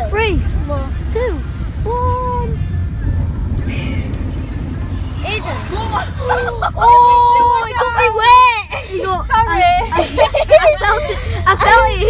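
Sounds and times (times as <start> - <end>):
car engine low rumble: 0.0 - 12.0
water splashing: 0.9 - 8.9.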